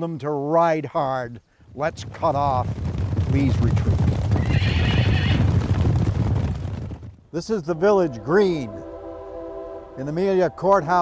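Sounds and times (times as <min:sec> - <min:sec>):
horses galloping: 0:01.6 - 0:07.3
horse whinnying: 0:04.3 - 0:05.6.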